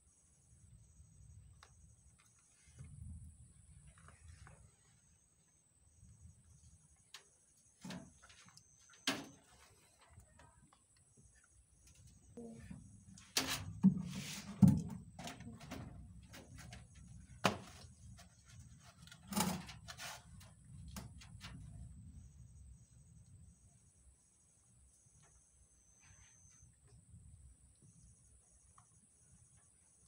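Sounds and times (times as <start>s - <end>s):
low rumble of movement: 0.5s - 24.4s
sharp knocks and bumps: 13.4s - 20.1s.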